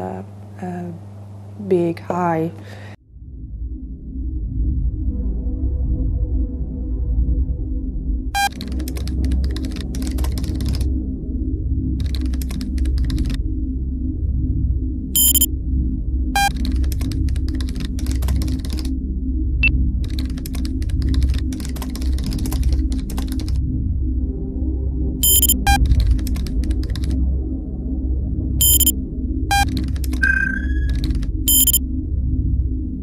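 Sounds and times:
rapid keyboard clicks: 8.4 - 10.9, 12.0 - 13.4, 16.4 - 18.9, 20.1 - 23.6, 25.2 - 27.1
short electronic beeps: 15.2 - 15.5, 25.2 - 25.8, 28.6 - 28.9, 29.5 - 30.8, 31.5 - 31.8.

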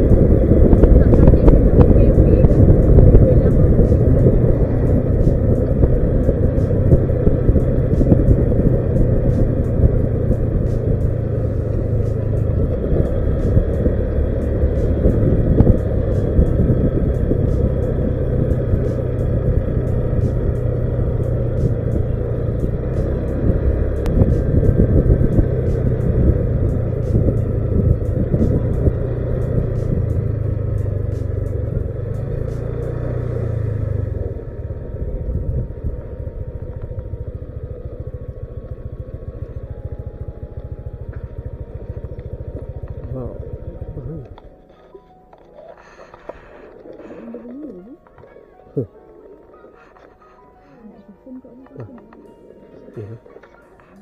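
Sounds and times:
wind noise: 0.0 - 31.3
scooter engine running: 0.0 - 54.0.

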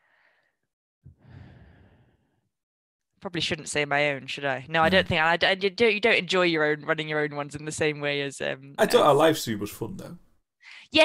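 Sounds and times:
soft out-breath into microphone: 0.0 - 2.5.

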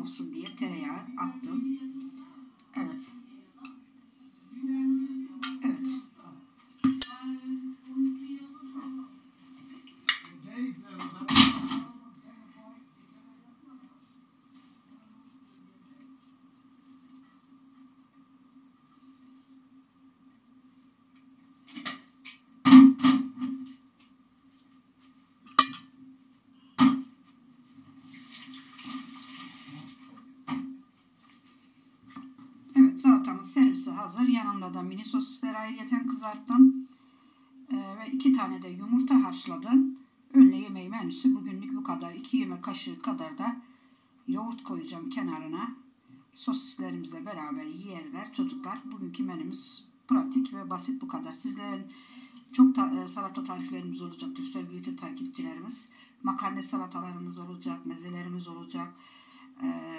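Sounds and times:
fork and dishes clinking: 25.6 - 25.9.

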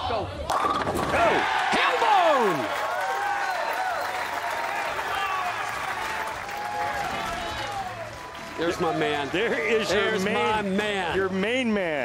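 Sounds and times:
shouts and whoops: 1.2 - 8.1
crowd cheering and applauding: 1.2 - 10.6.

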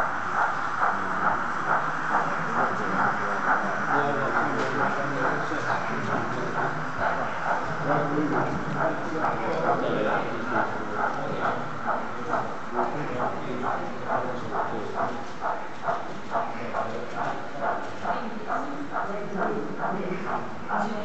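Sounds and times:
crowd hubbub in a hall: 0.0 - 21.0
model steam locomotive chuffing: 0.0 - 21.0.

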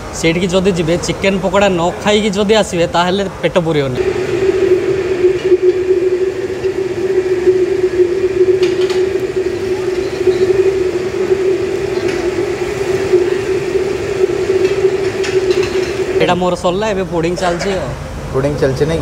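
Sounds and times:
loud steady kitchen hum: 0.0 - 19.0.

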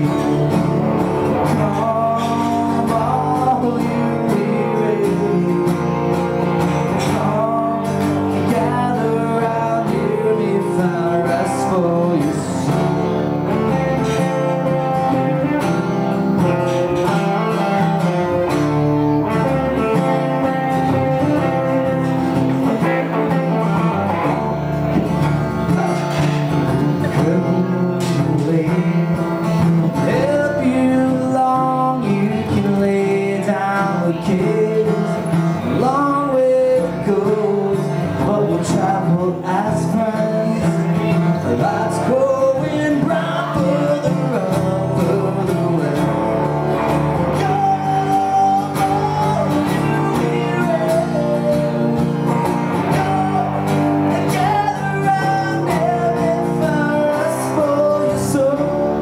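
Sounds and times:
electric and acoustic guitars playing: 0.0 - 59.0.

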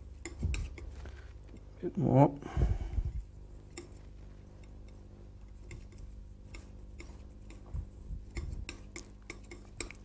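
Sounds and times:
palette knife scraping and tapping: 0.0 - 1.0, 3.6 - 10.0.

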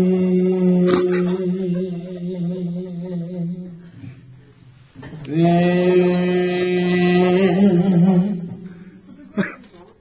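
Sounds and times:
man singing a held note: 0.0 - 4.3, 5.0 - 8.9.

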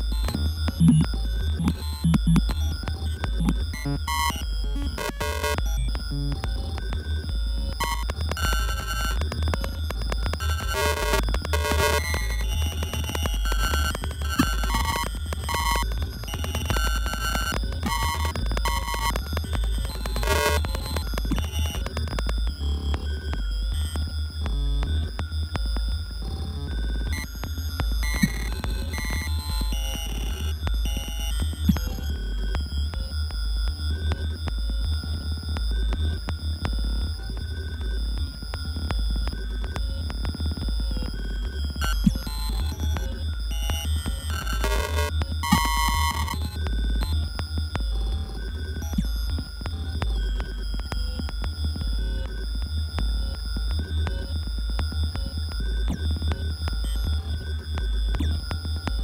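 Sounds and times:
pulsing low bass: 0.0 - 26.3
glitchy clicks: 0.0 - 59.0.

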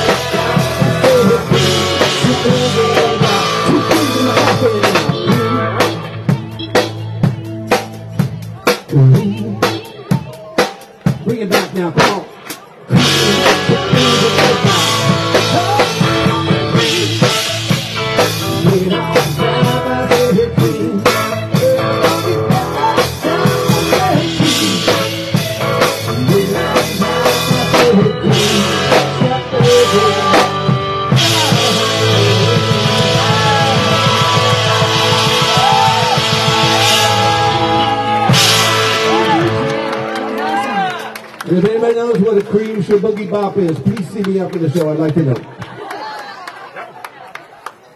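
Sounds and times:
person singing: 0.0 - 7.3, 8.5 - 12.3, 12.9 - 40.8
fast drum beat with cymbals: 0.0 - 12.2, 13.0 - 39.3
live band playing: 0.0 - 46.0
drum hits: 31.1 - 39.7.

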